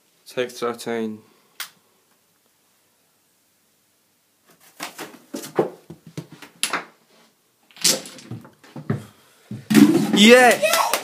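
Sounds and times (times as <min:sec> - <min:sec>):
spoken word: 0:10.2 - 0:11.0.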